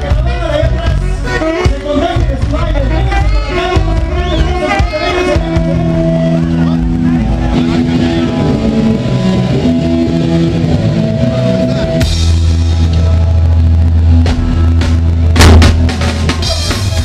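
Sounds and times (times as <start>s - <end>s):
electric guitar ringing: 0.0s - 17.0s
loud deep bass: 0.0s - 17.0s.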